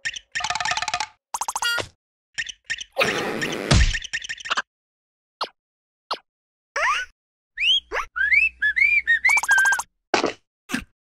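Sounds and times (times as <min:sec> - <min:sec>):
whistling a tune: 0:07.6 - 0:09.9.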